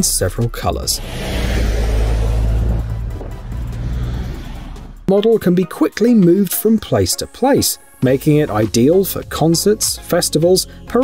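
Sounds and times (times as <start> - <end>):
background music: 0.0 - 11.0
heavy truck driving past: 0.9 - 5.1.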